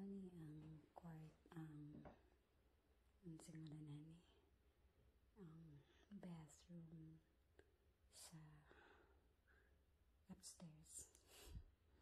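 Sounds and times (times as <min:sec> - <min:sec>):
person speaking softly: 0:00.0 - 0:02.2, 0:03.2 - 0:04.4.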